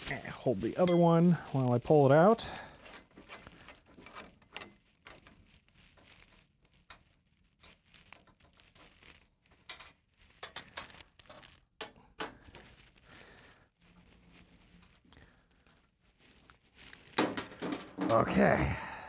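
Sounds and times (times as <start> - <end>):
clicks and taps handling metal parts: 2.8 - 5.4, 9.5 - 12.6.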